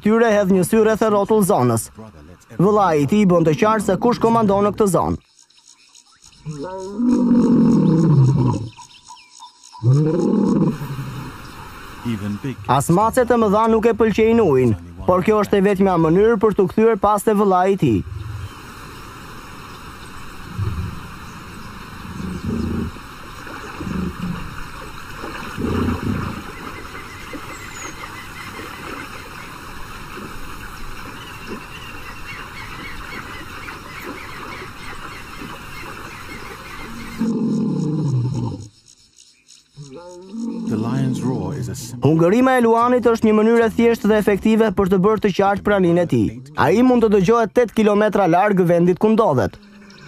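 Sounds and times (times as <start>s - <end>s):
lion roaring: 6.4s - 8.8s, 9.8s - 11.3s, 22.0s - 23.0s, 23.8s - 24.6s, 25.6s - 26.4s, 37.2s - 38.7s, 39.8s - 42.1s.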